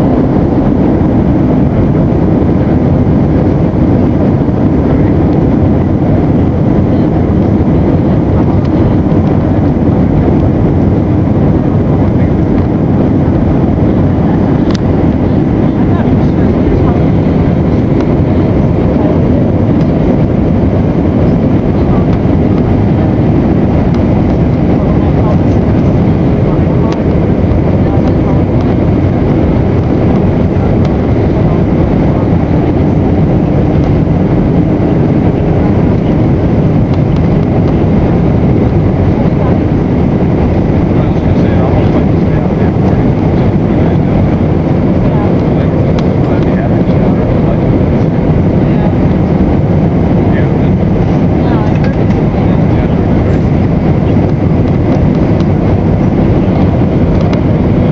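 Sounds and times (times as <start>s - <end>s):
airliner cabin engine noise: 0.0s - 57.9s
rushing airflow: 0.0s - 57.9s.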